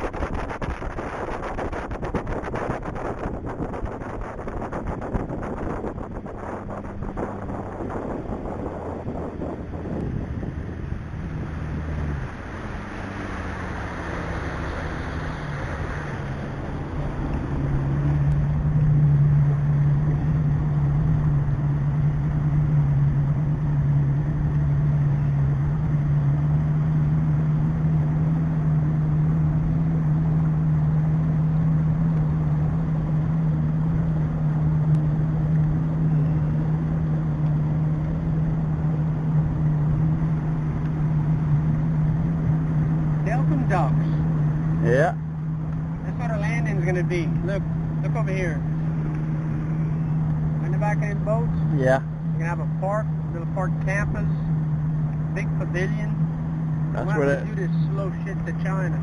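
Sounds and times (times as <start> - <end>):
outboard motor running: 0.0 - 13.8, 14.7 - 59.0
water noise: 0.0 - 59.0
wind: 0.0 - 59.0.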